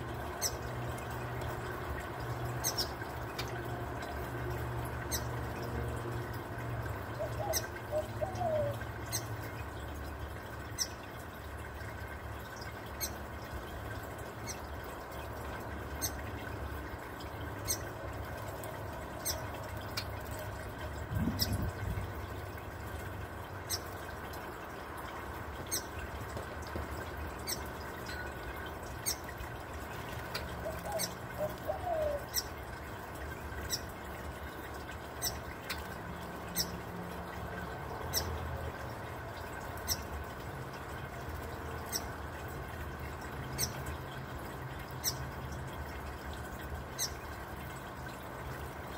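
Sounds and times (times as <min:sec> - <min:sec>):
fountain trickling and bubbling: 0:00.0 - 0:48.9.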